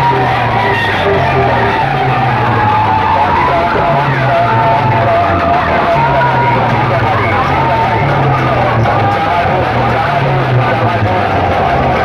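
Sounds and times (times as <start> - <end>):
deep pulsing bass line: 0.0 - 12.0
loud music from loudspeakers: 0.0 - 12.0.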